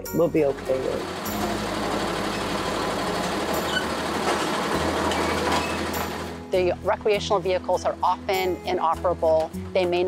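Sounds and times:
motor running: 0.6 - 6.5.

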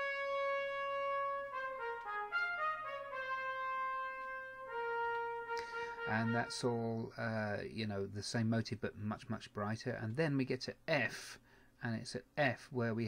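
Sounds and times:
computer brass band playback: 0.0 - 7.2.

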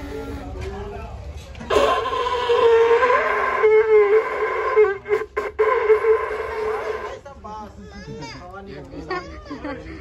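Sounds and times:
conch shell blown: 2.7 - 7.2.

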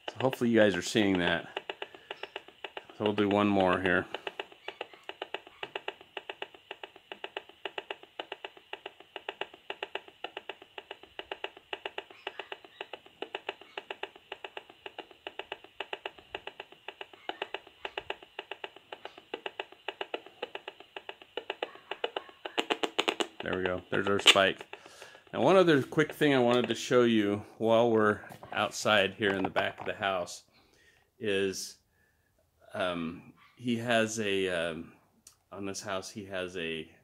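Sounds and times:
analyser speaker clicking: 0.0 - 31.1, 35.2 - 35.5.

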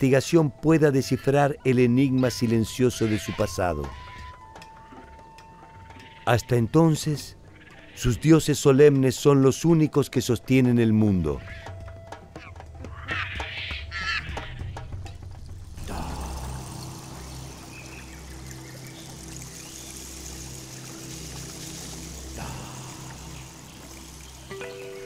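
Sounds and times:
soft music with low notes: 0.0 - 25.0
steady hiss: 14.8 - 25.0.

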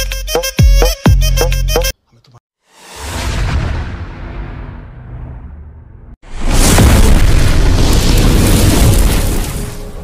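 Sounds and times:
explosion blast with rumbling roar: 2.9 - 10.0.

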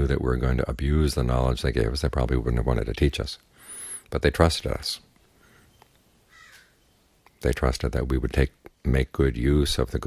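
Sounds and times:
faint bird call: 5.4 - 7.1.

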